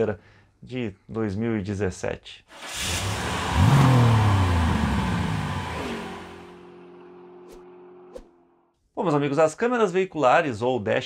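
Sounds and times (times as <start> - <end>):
car engine revving with whoosh: 2.5 - 8.4.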